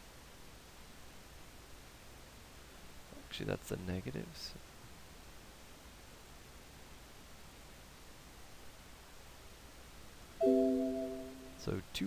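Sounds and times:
faint hiss: 0.0 - 12.0
electronic chime chord: 10.4 - 11.6.

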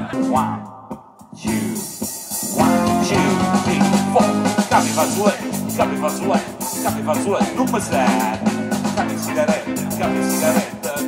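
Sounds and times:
bass guitar: 0.0 - 11.0
drum kit: 0.0 - 11.0
electric guitar: 1.4 - 11.0.

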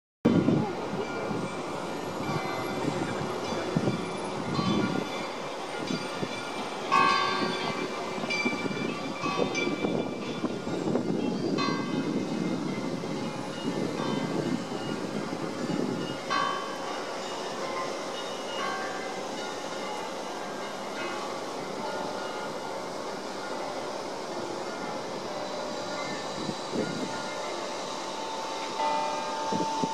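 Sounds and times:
wind buffeting microphone: 0.2 - 16.4, 25.6 - 27.7, 29.2 - 29.9
city ambience: 0.3 - 29.9.

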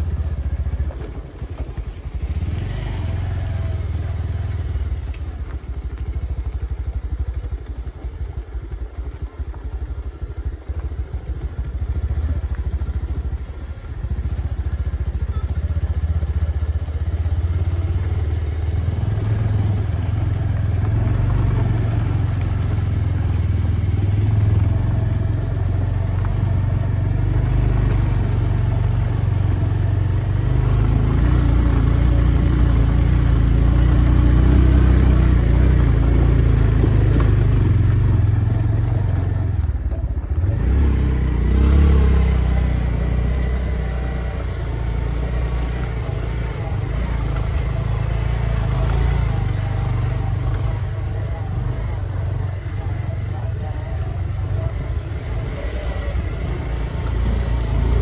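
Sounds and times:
diesel engine rumbling: 0.0 - 58.0.

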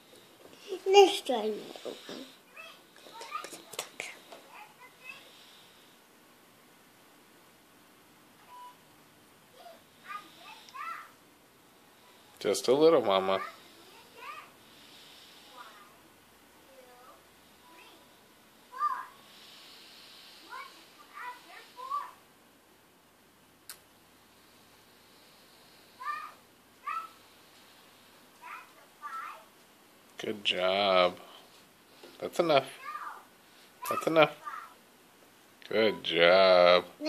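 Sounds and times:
soft whispery sounds: 0.0 - 6.0.

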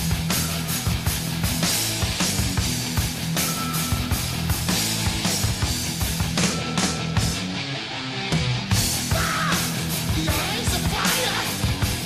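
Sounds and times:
bass guitar: 0.0 - 12.0
distorted electric guitars: 0.0 - 12.0
driving drum beat: 0.0 - 12.0.

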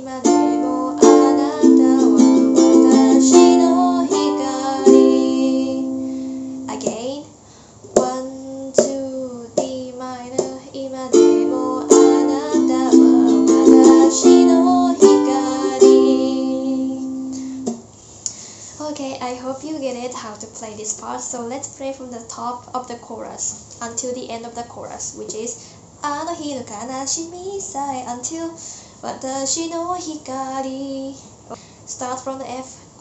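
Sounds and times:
woman singing: 0.0 - 7.3, 8.0 - 17.5, 25.2 - 31.2, 31.9 - 32.8
ukulele strumming: 0.2 - 7.0, 10.4 - 17.8
woman talking: 6.7 - 7.3, 18.8 - 30.2, 31.9 - 32.8.

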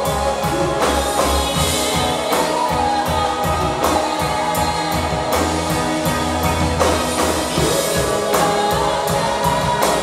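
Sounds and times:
bass guitar: 0.0 - 10.0
drums: 0.0 - 10.0
electric guitars: 0.0 - 10.0.

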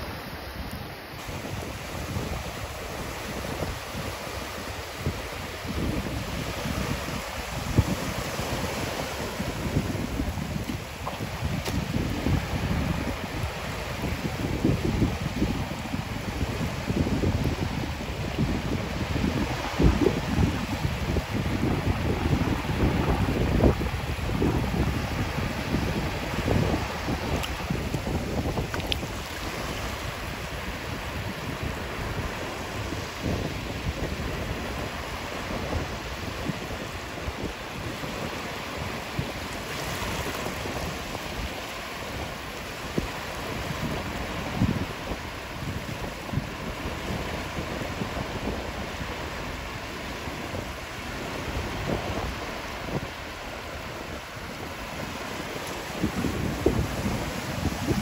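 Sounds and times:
small waves lapping: 0.0 - 58.0
wind buffeting microphone: 0.0 - 58.0.

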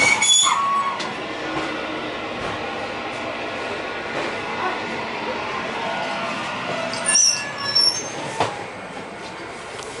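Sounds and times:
railway coach hum: 0.0 - 10.0
short high-pitched squeals: 6.9 - 8.3.

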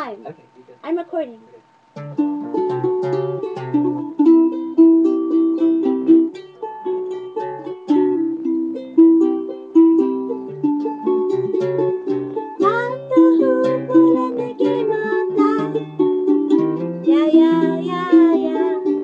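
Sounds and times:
plucked acoustic string instrument: 2.0 - 19.0.

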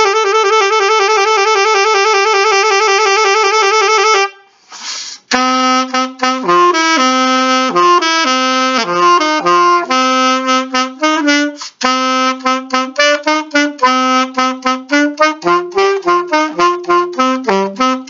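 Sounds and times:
alto saxophone playing: 0.0 - 4.6, 5.3 - 18.0
quick breath: 4.4 - 5.3, 11.6 - 11.8.

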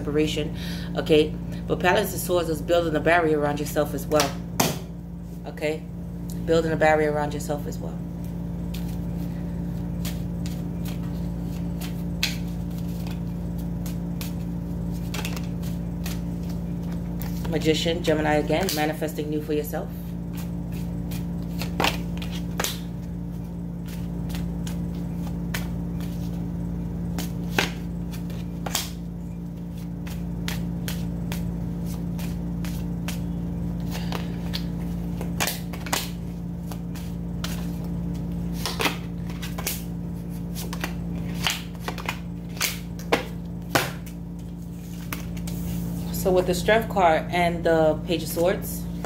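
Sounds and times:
steady low hum: 0.0 - 49.0
cards shuffling and clicking: 8.7 - 19.1, 20.0 - 26.4, 27.0 - 46.1.

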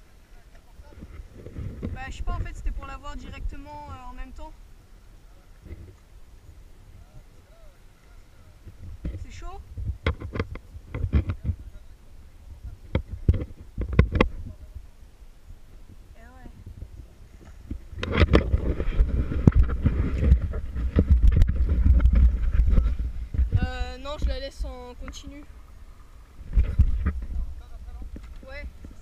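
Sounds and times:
water noise: 0.0 - 29.0
watercraft rumble: 0.0 - 29.0
wind buffeting microphone: 0.7 - 29.0.

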